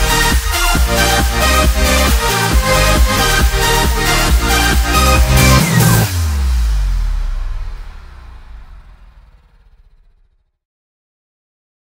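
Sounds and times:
electronic dance music: 0.0s - 10.1s
low buzzing bass: 0.0s - 10.5s.

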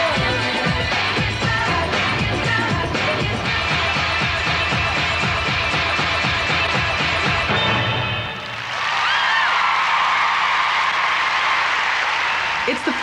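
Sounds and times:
dance-pop music: 0.0s - 7.5s
crowd cheering and applauding: 3.6s - 13.0s.

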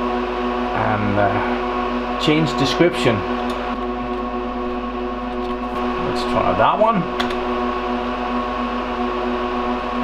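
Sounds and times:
server cooling fans whirring: 0.0s - 10.0s
person talking: 6.0s - 7.2s.

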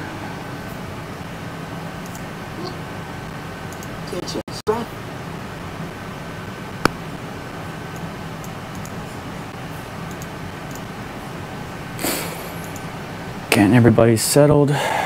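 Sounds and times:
low room hum: 0.0s - 15.0s
keyboard typing clicks: 2.0s - 2.3s, 3.7s - 4.0s, 8.0s - 9.0s, 10.1s - 10.9s, 12.6s - 12.9s.

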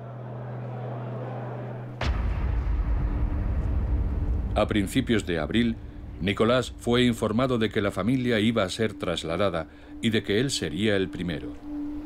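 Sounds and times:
steady low hum: 0.0s - 12.0s
sudden sharp hit: 2.0s - 8.2s
heavy low rumble: 2.0s - 9.3s.

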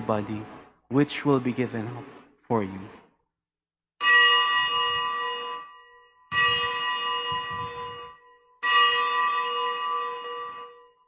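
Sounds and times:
altar bell ringing: 4.0s - 11.0s.

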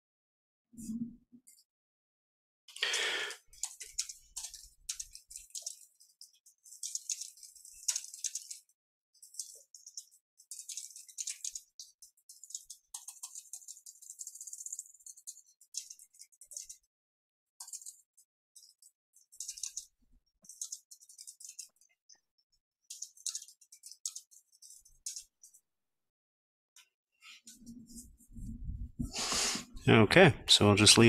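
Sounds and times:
keyboard typing: 3.6s - 16.9s, 17.6s - 21.9s, 22.9s - 25.3s.

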